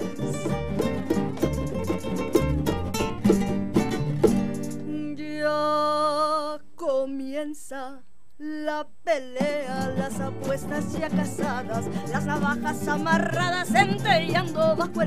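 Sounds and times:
woman singing: 0.0 - 0.8, 4.8 - 15.0
acoustic guitars strumming: 0.0 - 5.2, 9.2 - 15.0.

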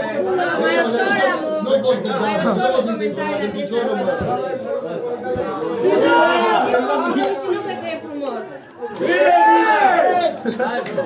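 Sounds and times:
men chattering: 0.0 - 11.0.

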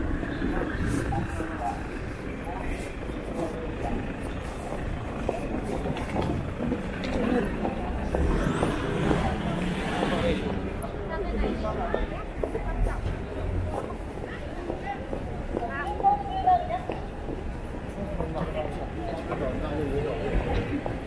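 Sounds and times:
passers-by talking: 0.0 - 21.0
road traffic: 0.0 - 21.0
vehicle rumbling past: 6.3 - 10.8.

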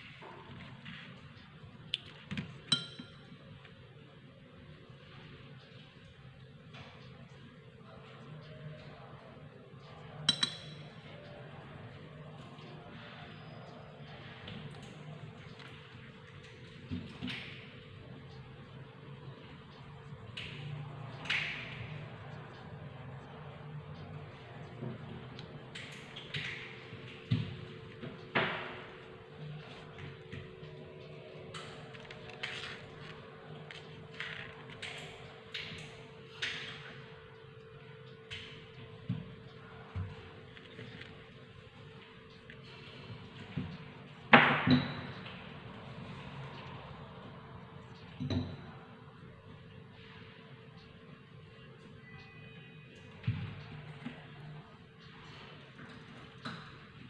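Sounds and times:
low steady hum: 0.0 - 57.0
paper rustling: 31.8 - 34.8.

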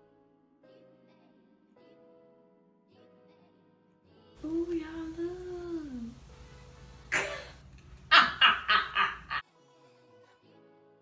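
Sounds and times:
faint music: 0.0 - 11.0
woman laughing loudly: 8.1 - 9.4.

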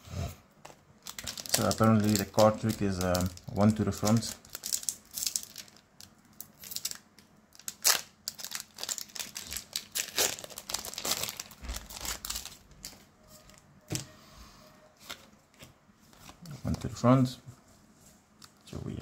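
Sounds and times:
foil wrapper crinkling and tearing: 0.6 - 13.6.

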